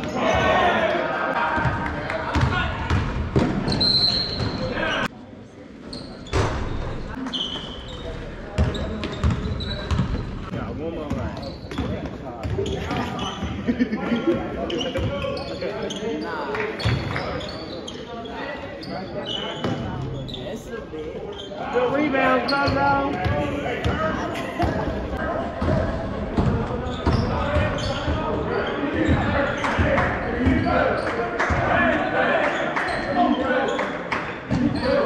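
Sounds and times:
basketball bouncing: 0:01.6 - 0:03.7
sneaker squeaks: 0:03.4 - 0:05.1, 0:05.9 - 0:10.4, 0:11.0 - 0:25.2, 0:26.4 - 0:31.3, 0:32.6 - 0:35.0.

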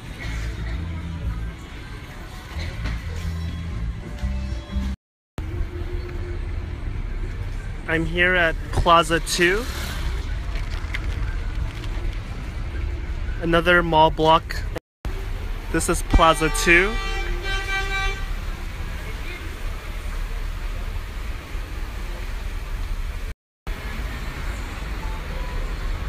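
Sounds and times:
road traffic engine rumble: 0:00.0 - 0:26.0
horn steady note: 0:16.1 - 0:18.6.

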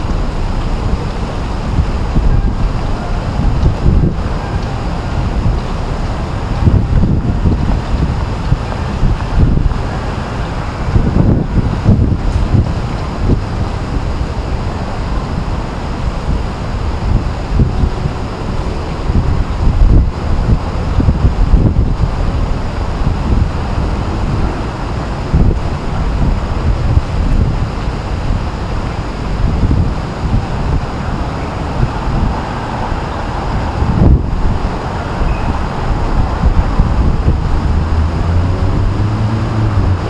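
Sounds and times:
wind buffeting microphone: 0:00.0 - 0:40.0.

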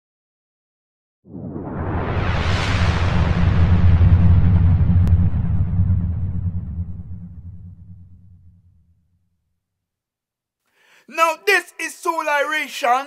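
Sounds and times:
hissing sweep sinking: 0:01.3 - 0:08.4
deep synthesizer rumble: 0:01.3 - 0:09.2.

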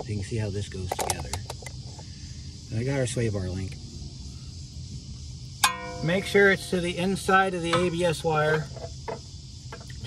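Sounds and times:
metallic clink ringing: 0:05.6 - 0:06.8.

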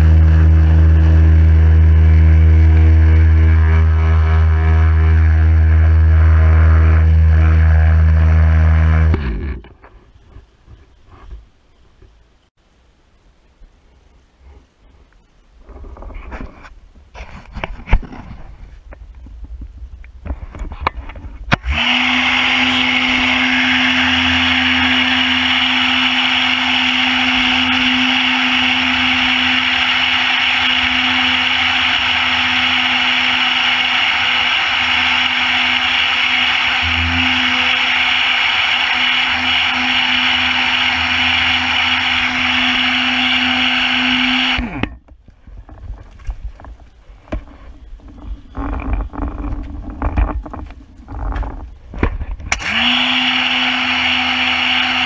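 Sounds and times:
pressure washer pump hum: 0:00.0 - 0:09.2, 0:21.5 - 0:44.9, 0:52.5 - 0:55.0.

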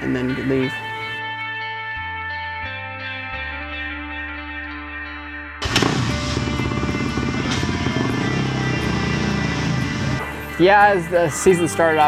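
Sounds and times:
music: 0:00.0 - 0:12.0
motocross bike engine running: 0:05.6 - 0:10.2.

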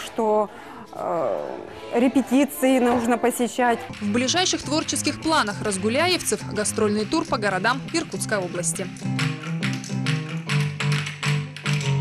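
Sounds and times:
wooden spoons clacking: 0:03.9 - 0:12.0.

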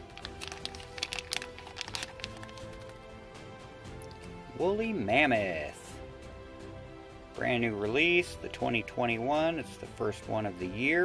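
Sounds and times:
plastic bag crinkling: 0:00.0 - 0:03.0
background music: 0:00.0 - 0:11.0.

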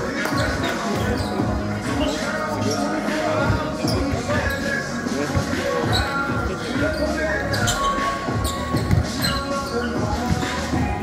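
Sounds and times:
basketball bouncing on gym floor: 0:08.8 - 0:09.4.

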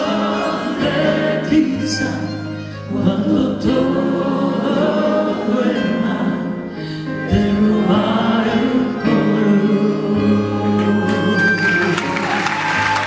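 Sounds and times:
woman singing lead: 0:00.0 - 0:12.2
live band playing: 0:08.6 - 0:13.0.

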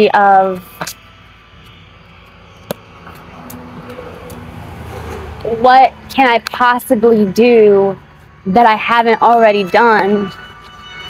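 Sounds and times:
passing vehicle engine: 0:00.6 - 0:11.0.

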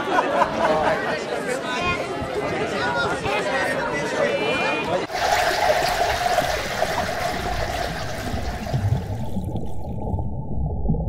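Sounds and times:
rushing gurgling water: 0:05.1 - 0:11.0.

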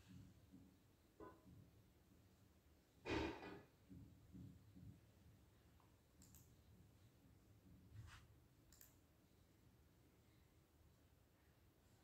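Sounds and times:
faint short clicks: 0:06.2 - 0:06.5, 0:08.7 - 0:09.0.

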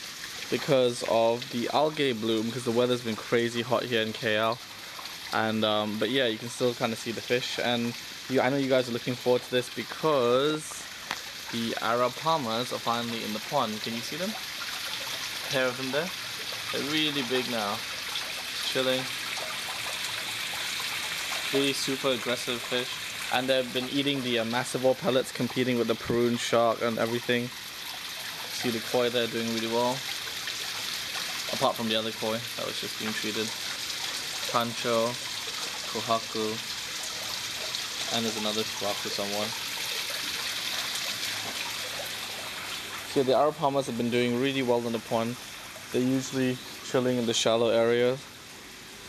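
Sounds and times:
water trickling into pond: 0:00.0 - 0:49.0.

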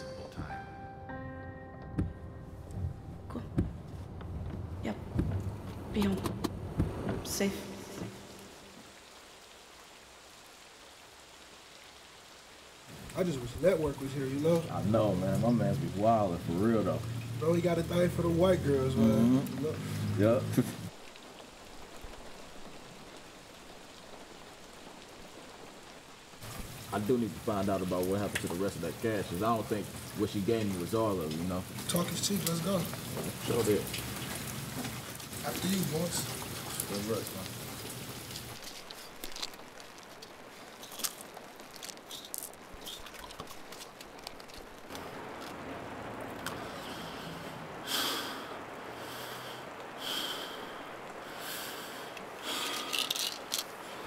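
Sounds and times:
steady rain falling: 0:01.9 - 0:54.0.

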